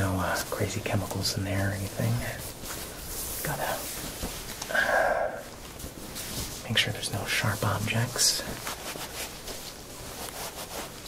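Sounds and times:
fabric rustling: 0:00.0 - 0:04.7, 0:05.4 - 0:11.0.

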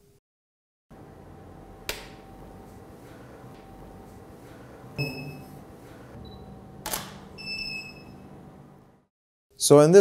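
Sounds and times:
camera electronic beep: 0:05.0 - 0:05.5.

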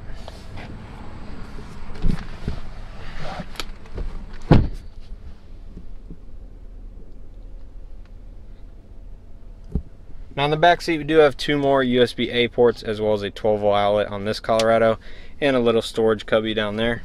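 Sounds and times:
low thump: 0:04.0 - 0:04.9, 0:09.7 - 0:10.0.

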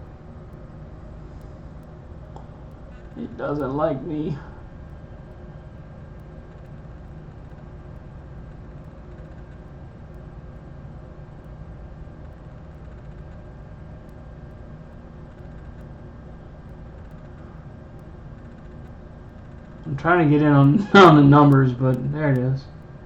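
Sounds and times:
fan hum and hiss: 0:00.0 - 0:23.0.

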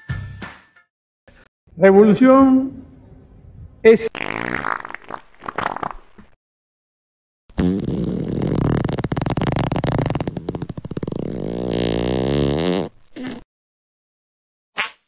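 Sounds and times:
fart sound effect: 0:04.1 - 0:06.3, 0:07.5 - 0:13.4.

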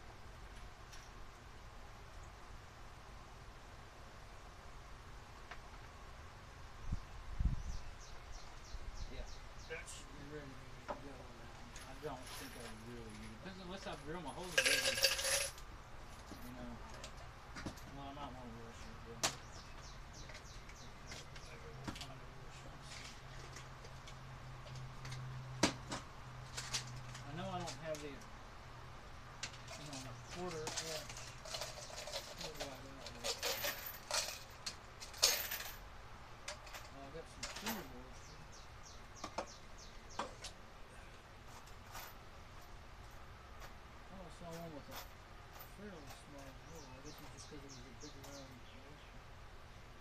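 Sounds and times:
small metal hardware clinking: 0:14.4 - 0:15.6, 0:29.4 - 0:35.8.

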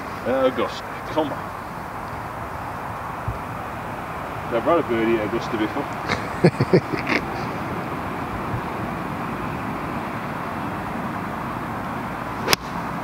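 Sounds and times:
steady outdoor hiss: 0:00.0 - 0:13.0
golf club striking ball: 0:12.4 - 0:12.8.

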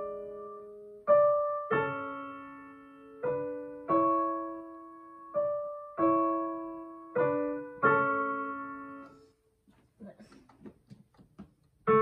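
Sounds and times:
digital piano chords: 0:00.0 - 0:09.3, 0:11.8 - 0:12.0.

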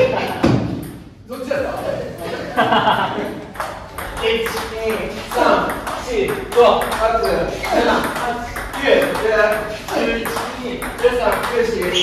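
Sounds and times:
players' voices: 0:01.2 - 0:12.0.

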